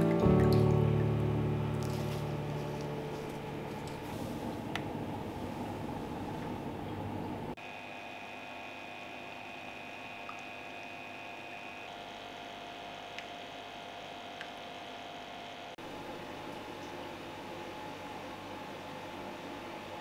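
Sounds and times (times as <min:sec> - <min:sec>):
low room rumble: 0:00.0 - 0:07.6
aquarium pump hum: 0:00.0 - 0:20.0.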